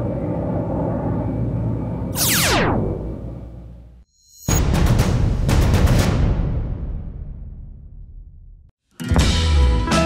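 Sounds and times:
low synthesized rumble: 0:00.0 - 0:04.0
fast falling whoosh: 0:02.2 - 0:03.4.

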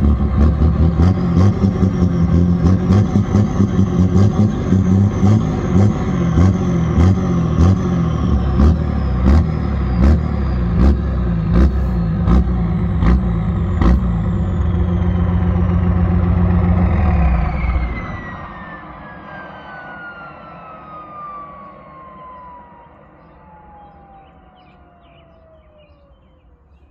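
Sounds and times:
diesel truck engine running: 0:00.0 - 0:19.0.

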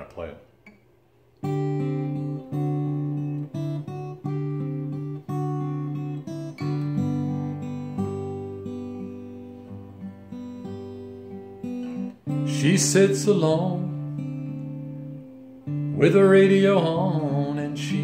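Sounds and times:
acoustic guitar chords: 0:00.0 - 0:18.0.

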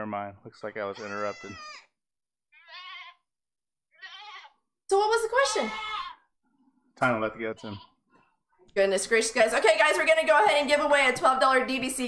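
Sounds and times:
goat bleating: 0:00.8 - 0:01.9, 0:02.6 - 0:03.3, 0:03.9 - 0:04.6, 0:05.4 - 0:06.2, 0:07.4 - 0:08.0.

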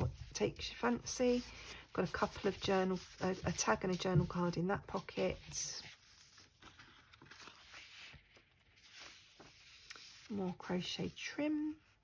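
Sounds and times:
paper pages rustling: 0:00.0 - 0:11.9.

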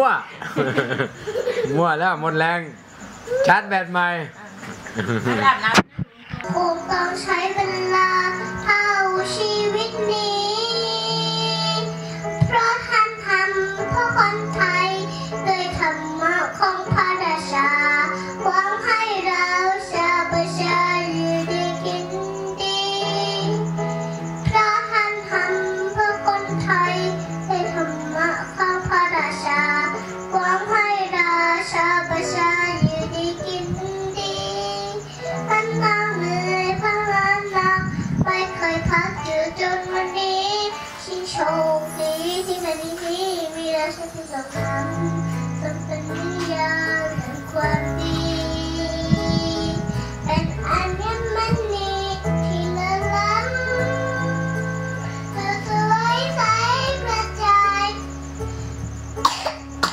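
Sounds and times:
backing music track: 0:00.0 - 0:59.9
girl singing into microphone: 0:05.7 - 0:59.9.

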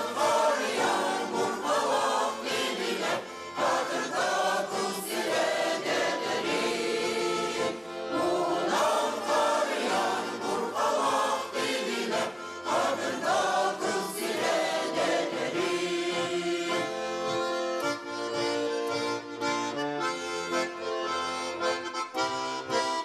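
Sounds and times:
women's choir singing: 0:00.0 - 0:17.0.

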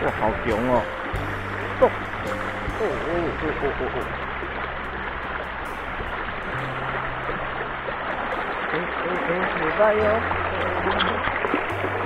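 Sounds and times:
creek rushing over rocks: 0:00.0 - 0:12.0
low background music: 0:00.0 - 0:12.0.

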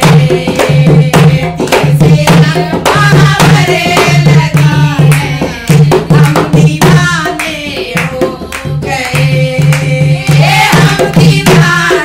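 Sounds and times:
hand drum beat: 0:00.0 - 0:12.0
rhythmic hand-clapping: 0:00.0 - 0:12.0
women singing devotional song: 0:00.0 - 0:12.0.

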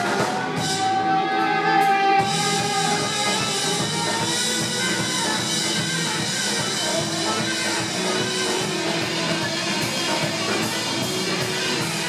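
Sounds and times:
bass guitar: 0:00.0 - 0:12.0
drum kit: 0:00.0 - 0:12.0
electric guitars: 0:00.0 - 0:12.0
saxophone: 0:00.0 - 0:12.0.

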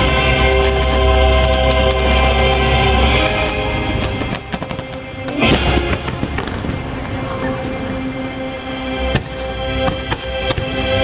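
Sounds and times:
fireworks bursting and crackling: 0:00.0 - 0:11.0
music: 0:00.0 - 0:11.0
loud firework bang: 0:03.4 - 0:07.5.

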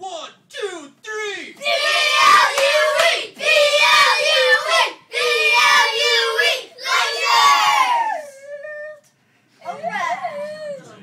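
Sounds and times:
boys shouting a cheer: 0:01.6 - 0:08.4.

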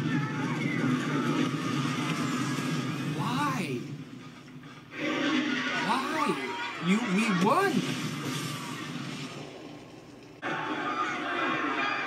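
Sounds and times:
fire roaring: 0:00.0 - 0:12.0
noisy scene sound: 0:00.0 - 0:12.0.

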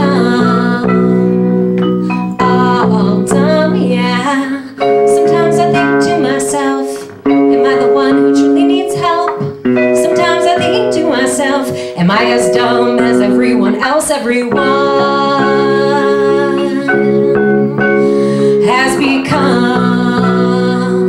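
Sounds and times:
electric bass guitar: 0:00.0 - 0:21.0
electronic keyboard chords: 0:00.0 - 0:21.0
woman singing: 0:00.0 - 0:21.0.

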